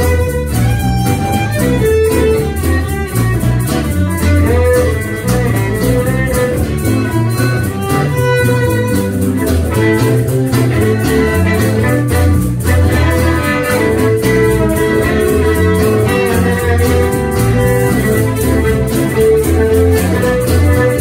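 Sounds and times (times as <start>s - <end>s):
fiddle playing long bowed notes: 0.0s - 21.0s.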